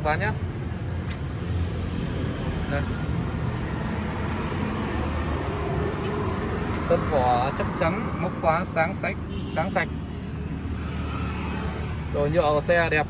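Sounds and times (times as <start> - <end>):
low traffic rumble: 0.0 - 13.0.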